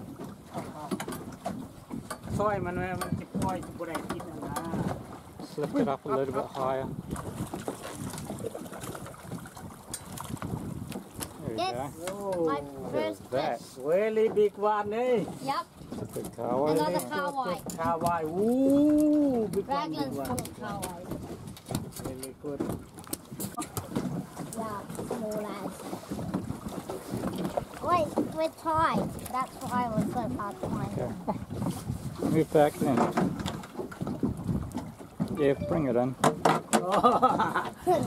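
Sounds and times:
wind buffeting microphone: 0:00.0 - 0:13.6, 0:14.2 - 0:36.2
sea noise: 0:00.0 - 0:38.0
water splashing against boat hull: 0:00.0 - 0:38.0.

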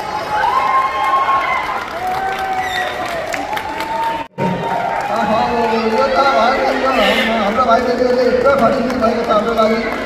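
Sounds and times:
crowd noise in a hall: 0:00.0 - 0:10.0
voice holding high note: 0:06.9 - 0:07.6.

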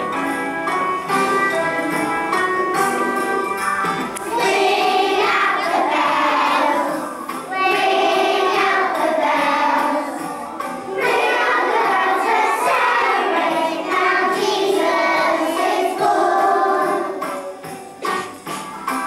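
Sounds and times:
young children singing: 0:04.2 - 0:19.0.

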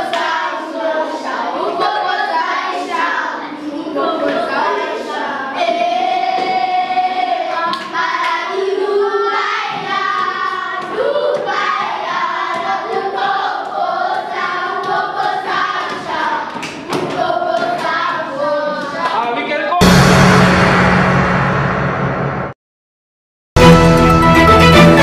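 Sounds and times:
children singing: 0:00.0 - 0:19.2.

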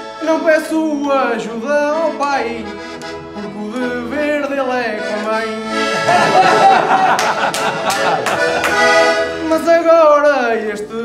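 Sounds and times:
button accordion playing dance tune: 0:00.0 - 0:09.9
person singing verses: 0:00.2 - 0:06.5.

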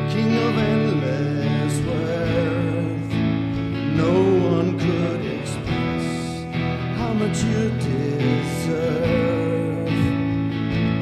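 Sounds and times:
person singing melody: 0:00.0 - 0:11.0
strummed acoustic guitar: 0:00.0 - 0:11.0
worship band playing: 0:00.0 - 0:11.0.

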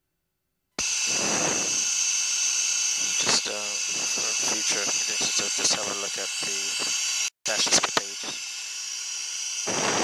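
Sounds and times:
radio channel hiss: 0:00.8 - 0:10.0.

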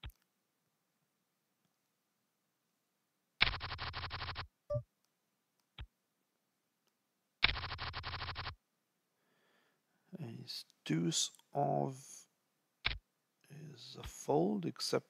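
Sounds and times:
rattling riffle of cards: 0:03.4 - 0:04.4.

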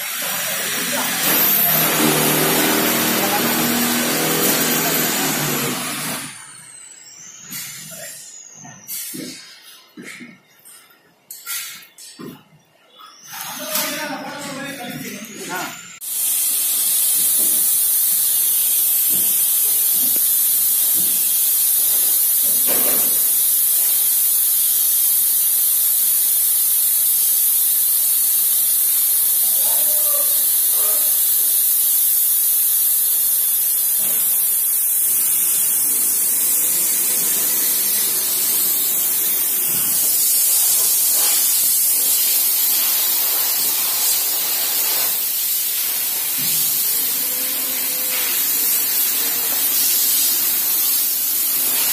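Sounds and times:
paint sprayer hissing: 0:00.0 - 0:06.4, 0:15.5 - 0:51.9.

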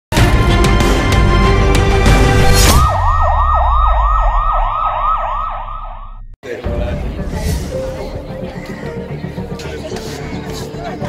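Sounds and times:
theme music: 0:00.1 - 0:10.2
siren wailing: 0:02.6 - 0:06.4.

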